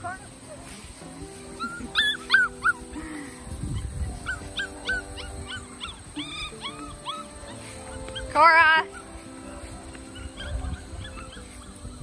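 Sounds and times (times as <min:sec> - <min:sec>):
puppies yipping and whimpering: 0:00.0 - 0:12.0
soft background music: 0:00.0 - 0:12.0.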